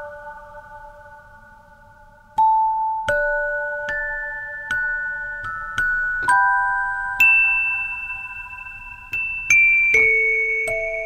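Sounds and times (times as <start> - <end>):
lullaby on mallet instrument: 0.0 - 11.0.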